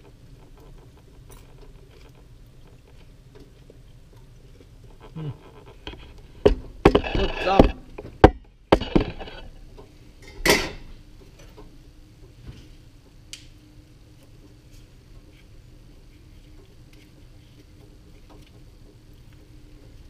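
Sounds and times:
person humming: 5.1s - 5.5s.

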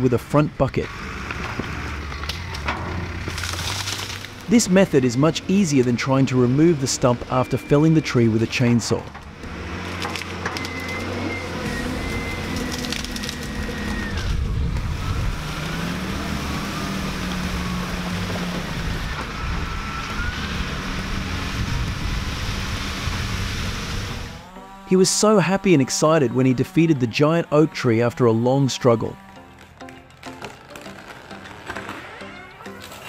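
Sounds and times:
diesel engine running hard: 0.0s - 30.6s
wood splintering cracks: 1.2s - 4.6s, 9.2s - 19.3s, 29.2s - 33.0s.

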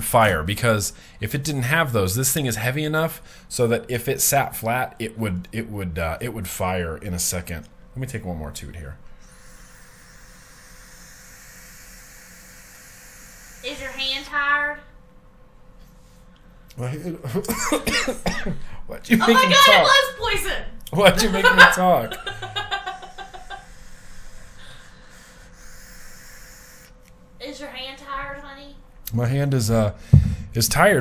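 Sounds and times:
air drawn through drip tip: 9.2s - 13.9s, 23.6s - 27.0s
vape coil hissing: 9.2s - 14.3s, 23.0s - 27.0s
man laughing: 17.3s - 18.6s, 21.1s - 23.7s.

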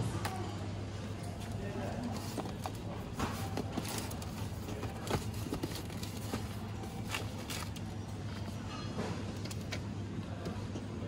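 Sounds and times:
low freezer hum: 0.0s - 11.0s.

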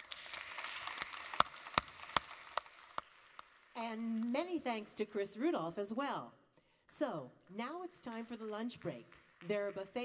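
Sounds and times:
audience applause: 0.0s - 4.3s.

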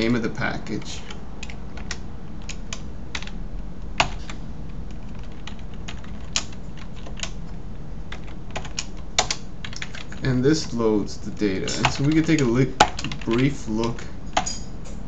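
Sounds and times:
keyboard typing: 0.0s - 7.4s, 8.1s - 10.8s, 11.8s - 14.6s
low hum: 0.0s - 12.1s.

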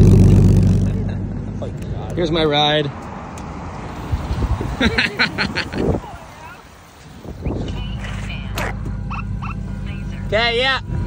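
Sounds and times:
car engine idling: 0.0s - 2.8s, 4.9s - 11.0s
burst of laughter: 4.8s - 5.9s.

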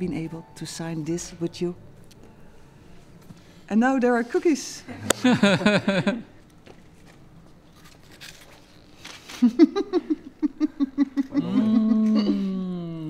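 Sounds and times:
person laughing: 4.9s - 6.3s, 9.4s - 13.0s
long falling voiced sound: 11.4s - 13.0s.

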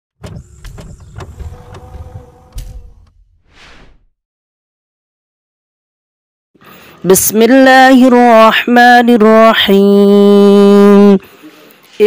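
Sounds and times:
mechanical clicks: 0.2s - 3.2s
low whirring rumble: 0.3s - 3.4s.

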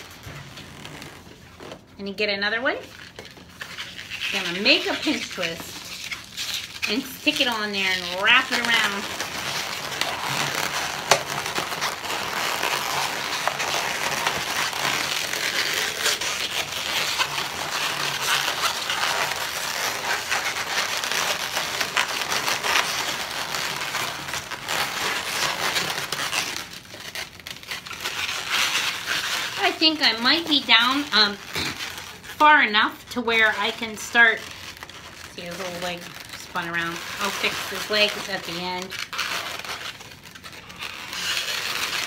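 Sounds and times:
balloons rubbing and squeaking: 0.0s - 42.0s.

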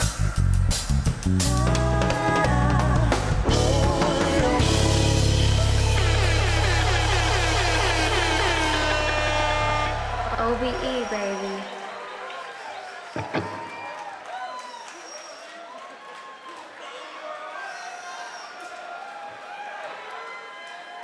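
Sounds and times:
funk band playing: 0.0s - 10.6s
drums and bass: 0.0s - 11.0s
backing singers singing runs: 1.5s - 6.1s.

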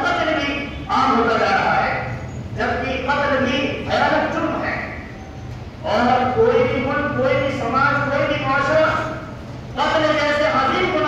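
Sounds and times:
man preaching: 0.0s - 5.1s, 5.8s - 11.0s.

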